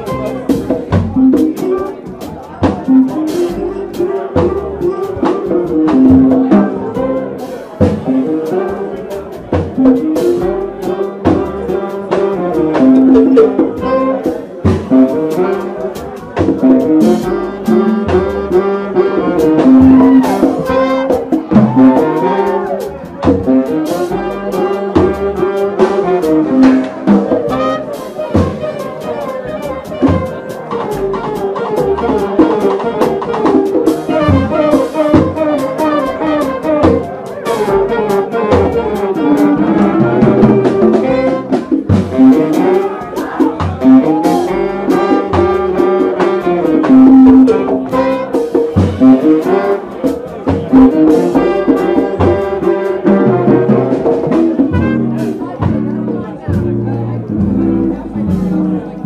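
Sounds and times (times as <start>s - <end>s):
drum kit with cymbals: 0.0s - 59.0s
jazz horns playing melody: 0.0s - 59.0s.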